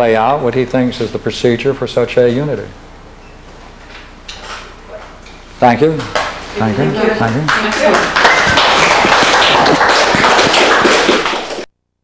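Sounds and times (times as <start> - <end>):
audience applauding: 7.0 - 11.7.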